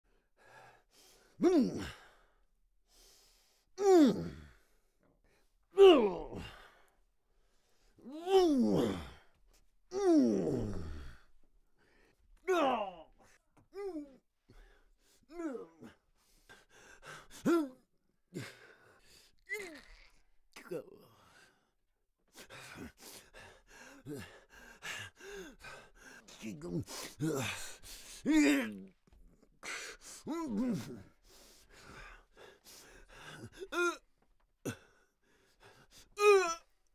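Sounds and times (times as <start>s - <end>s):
man grunting and exhaling: 1.4s - 2.0s, 3.8s - 4.6s, 5.8s - 6.8s, 8.2s - 9.2s, 10.0s - 11.3s, 26.2s - 28.9s, 29.6s - 31.2s.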